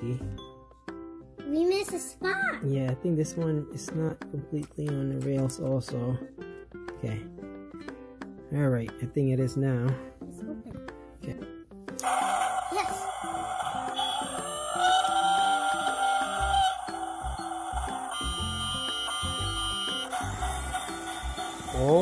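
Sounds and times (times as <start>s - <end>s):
plucked background music: 0.0s - 22.0s
toy train hiss and whir: 12.0s - 14.2s, 16.4s - 22.0s
whistle-like tone: 13.8s - 22.0s.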